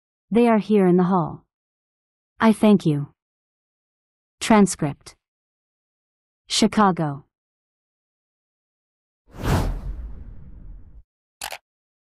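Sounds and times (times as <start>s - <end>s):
whoosh with rumbling tail: 9.4s - 11.0s.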